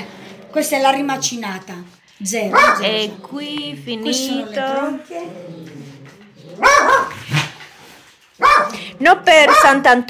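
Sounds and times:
faint voices: 0.6s - 6.2s
dog barking: 2.5s - 3.1s, 6.5s - 7.5s, 8.4s - 9.9s.

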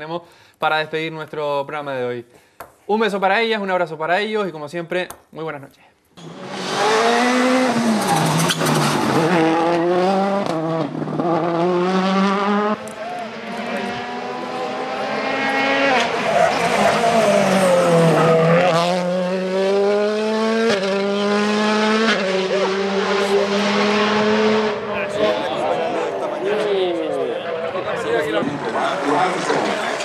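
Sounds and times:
rally car engines at full throttle: 6.2s - 30.0s
tire squeal: 7.9s - 9.2s.

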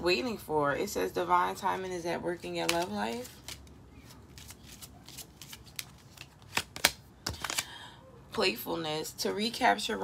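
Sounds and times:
cards being shuffled: 2.6s - 7.7s.

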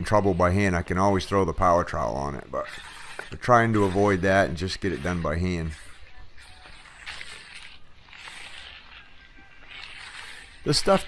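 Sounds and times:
float scraping wet concrete: 0.0s - 11.0s.

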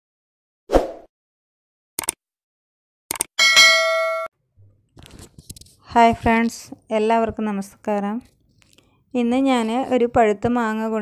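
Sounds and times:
bright bell ding: 3.4s - 4.3s.

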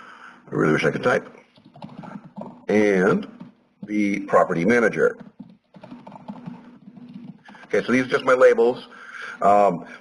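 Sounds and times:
fast typing on keyboard: 1.5s - 8.4s.

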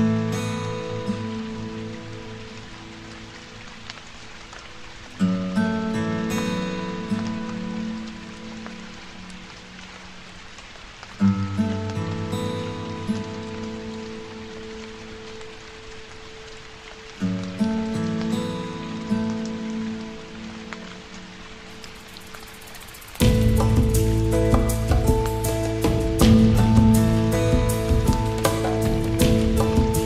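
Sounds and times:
rain on hard surfaces and foliage: 0.0s - 30.0s
soft instrumental music chords: 22.9s - 30.0s.

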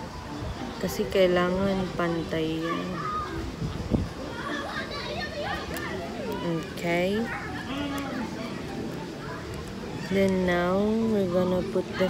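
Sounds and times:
children talking and playing: 0.0s - 12.0s.

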